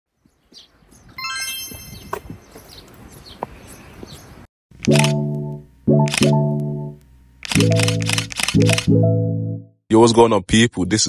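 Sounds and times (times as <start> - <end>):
shimmering high ringing chime: 1.2 - 2.1.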